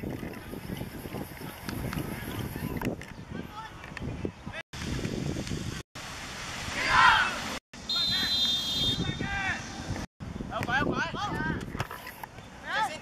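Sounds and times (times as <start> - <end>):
boys shouting: 6.8 - 7.4
high whistle blast: 7.8 - 9.2.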